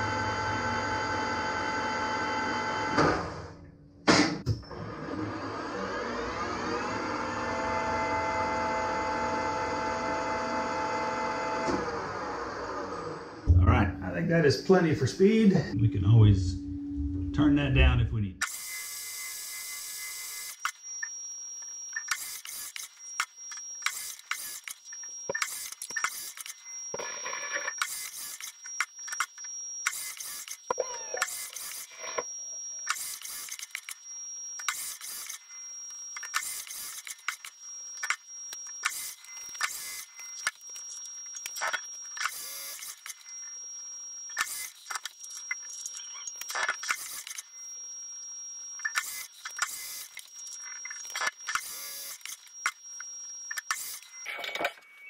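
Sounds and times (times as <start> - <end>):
thin high whine: 13.5 - 55.0.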